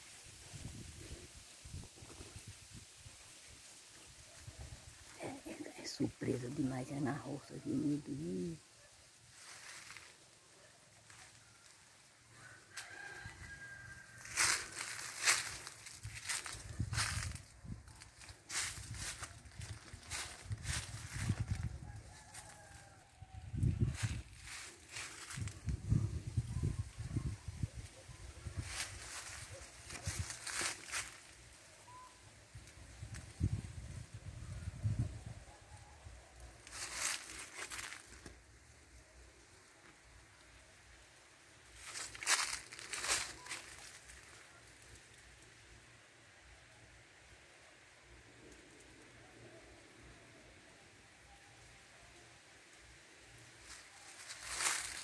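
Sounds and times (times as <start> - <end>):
dry leaves and brush crackling: 0.0 - 50.6, 51.2 - 55.0.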